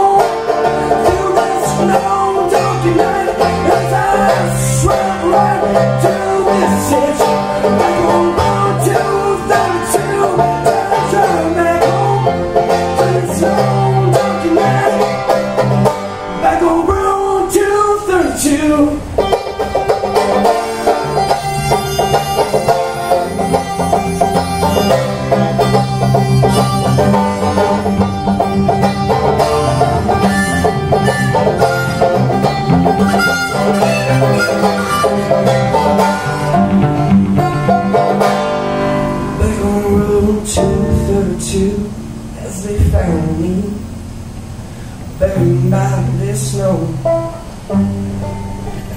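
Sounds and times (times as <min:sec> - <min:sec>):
acoustic guitar backing: 0:00.0 - 0:48.9
banjo strumming: 0:00.0 - 0:48.9.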